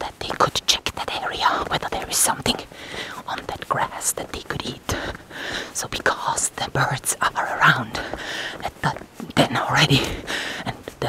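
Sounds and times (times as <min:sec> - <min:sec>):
person whispering: 0:00.0 - 0:11.0.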